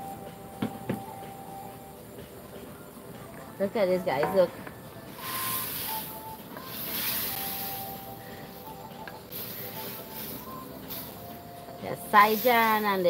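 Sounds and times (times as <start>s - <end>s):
gas burner flame hissing: 0.0s - 13.0s.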